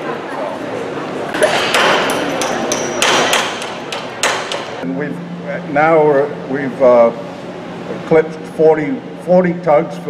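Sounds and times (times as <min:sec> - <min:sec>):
hammer striking timber: 0:01.4 - 0:04.8.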